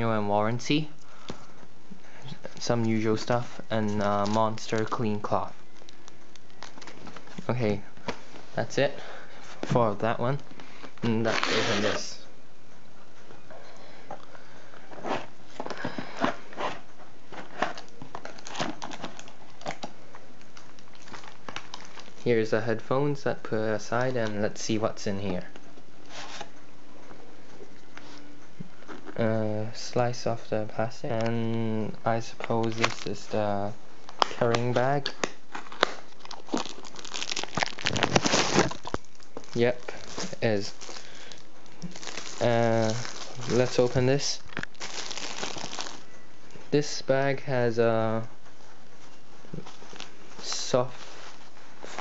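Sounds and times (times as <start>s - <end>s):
faint steady hiss: 0.0s - 52.0s
plastic wrapping crinkling: 2.4s - 8.6s, 9.5s - 12.2s, 15.0s - 22.5s, 32.2s - 33.4s, 34.0s - 46.2s, 48.4s - 52.0s
packaging rustling: 2.6s - 8.6s, 10.5s - 12.2s, 14.9s - 22.3s, 32.4s - 33.4s, 34.0s - 46.2s, 49.6s - 52.0s.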